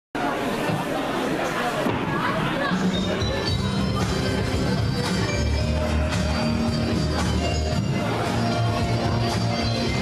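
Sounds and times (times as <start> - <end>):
babble of voices: 0.2 - 10.0.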